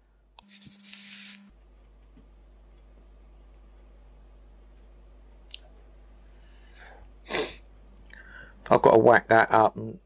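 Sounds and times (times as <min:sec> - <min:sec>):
faint low hum: 0:00.0 - 0:10.0
e-cigarette air hiss: 0:00.4 - 0:01.5.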